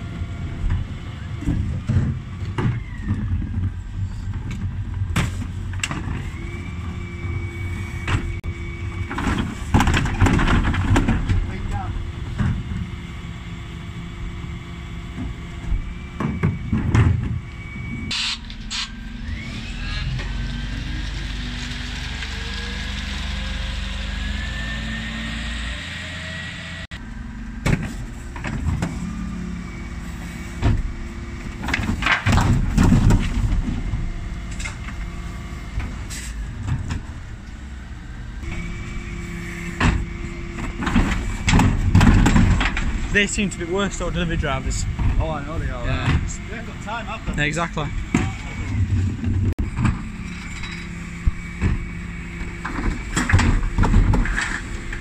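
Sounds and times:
diesel engine revving: 5.8s - 55.0s
wheelie bins clanking: 8.0s - 13.3s, 27.3s - 37.4s, 38.4s - 55.0s.

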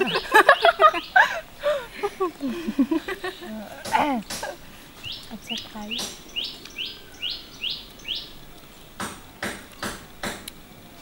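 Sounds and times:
bird singing whistled notes: 0.0s - 1.2s, 5.0s - 8.6s.

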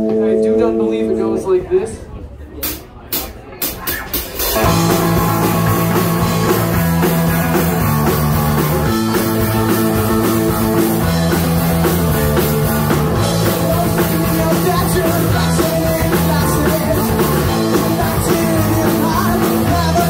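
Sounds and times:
live rock band: 2.6s - 20.0s.

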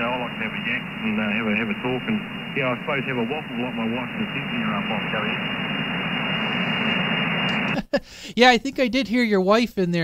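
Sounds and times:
radio click: 0.0s - 7.8s
radio static hiss: 0.0s - 8.0s.

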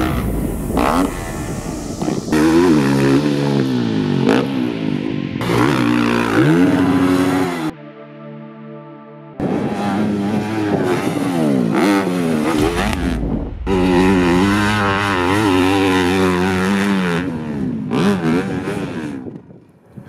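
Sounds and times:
dirt bike engine revving: 0.0s - 7.7s, 9.4s - 19.3s.

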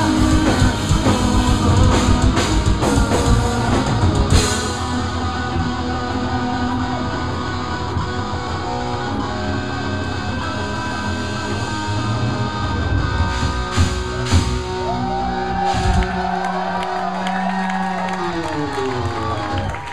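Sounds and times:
live rock band playing: 0.0s - 19.9s.

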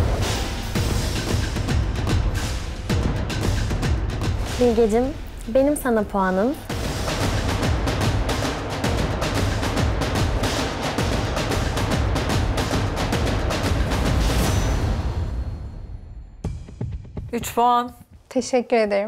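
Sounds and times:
suspense music with drum roll: 0.0s - 18.3s.

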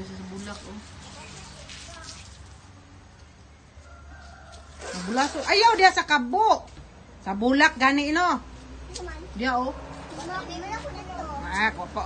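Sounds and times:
distant rooster crowing: 3.8s - 5.4s.

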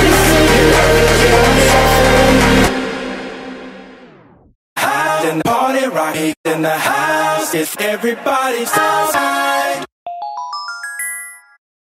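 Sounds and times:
rising bell-like chime notes: 10.1s - 11.6s.

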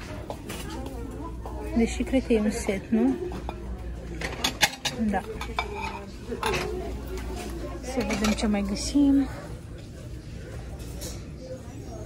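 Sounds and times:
porcelain plates clinking: 4.2s - 6.8s.

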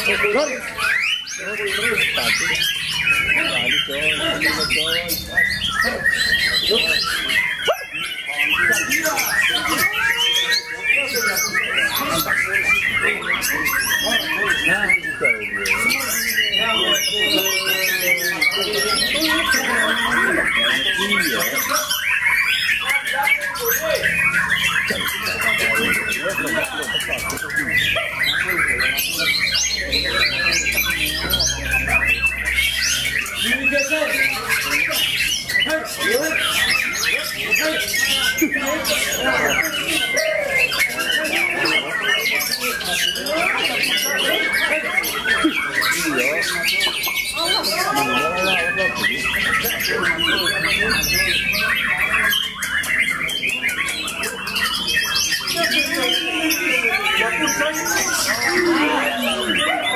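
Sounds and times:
birds singing whistled phrases: 0.0s - 59.9s
murmur of voices: 0.0s - 59.9s.

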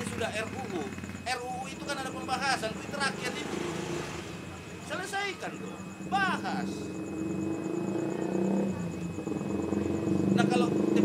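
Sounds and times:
motor engine humming: 0.0s - 11.0s.

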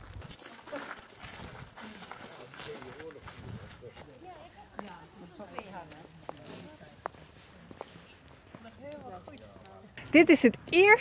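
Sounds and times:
footsteps on gravel: 0.0s - 4.1s.

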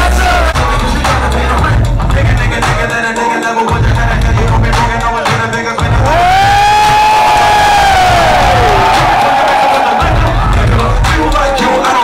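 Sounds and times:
hip-hop beat with heavy bass: 0.0s - 12.0s
long held vocal shout: 6.0s - 10.2s
crowd cheering: 6.0s - 12.0s.

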